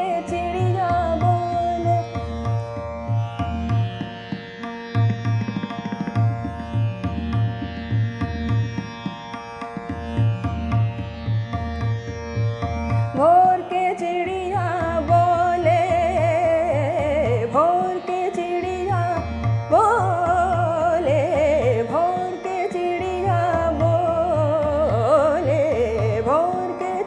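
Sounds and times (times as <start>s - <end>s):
tabla beat: 0.0s - 27.0s
person singing: 13.2s - 27.0s.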